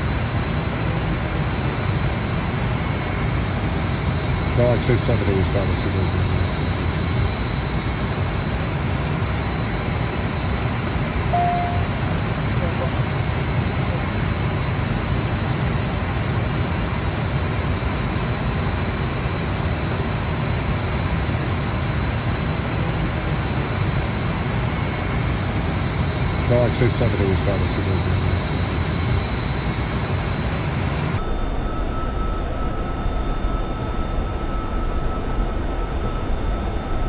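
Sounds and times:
jet cockpit rushing noise: 0:00.0 - 0:31.2
high whine: 0:00.0 - 0:32.8
short tone: 0:11.2 - 0:13.0.

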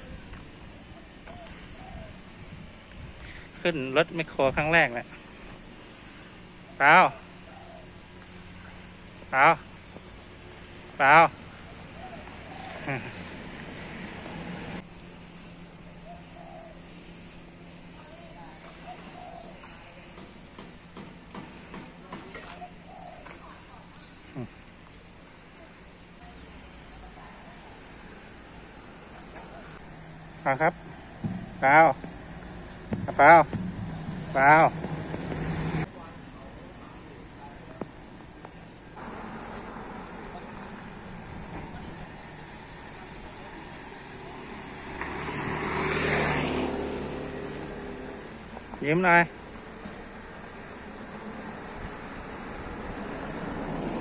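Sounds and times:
vehicle passing by: 0:00.1 - 0:24.6, 0:25.4 - 0:37.6, 0:38.8 - 0:54.0
bird chirping: 0:09.7 - 0:13.2, 0:18.6 - 0:28.8.

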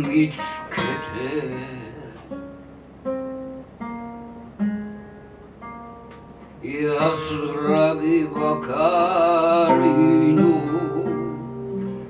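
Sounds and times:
man singing: 0:00.0 - 0:02.4, 0:06.6 - 0:11.8
acoustic guitar: 0:00.0 - 0:12.0.

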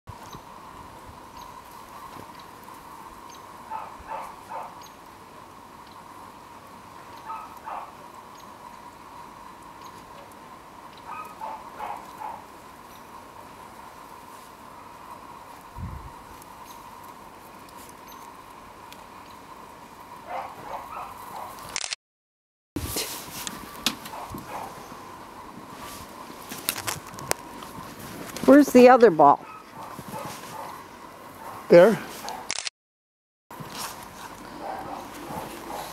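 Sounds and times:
sharp clicks: 0:21.7 - 0:22.0, 0:32.4 - 0:32.7
footsteps crunching in snow: 0:25.5 - 0:28.7, 0:29.7 - 0:30.8, 0:33.5 - 0:35.9
dog sniffing in snow: 0:29.8 - 0:30.8, 0:33.6 - 0:35.9.

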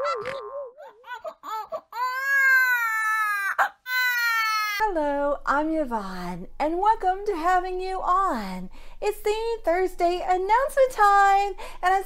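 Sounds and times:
baby crying: 0:00.0 - 0:04.8.

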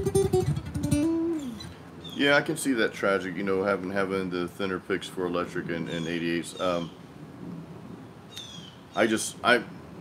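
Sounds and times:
faint outdoor background: 0:00.0 - 0:10.0.

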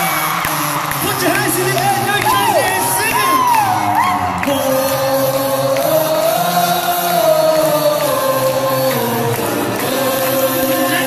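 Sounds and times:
band playing: 0:00.0 - 0:11.0
crowd singing along: 0:00.0 - 0:11.0.

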